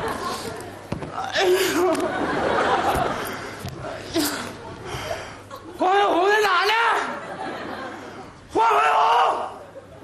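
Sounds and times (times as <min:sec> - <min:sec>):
man shouting: 0:05.8 - 0:07.2, 0:08.6 - 0:09.6.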